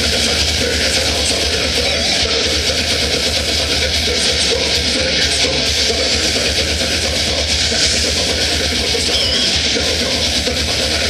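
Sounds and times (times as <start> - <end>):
death metal band playing: 0.0 - 11.0.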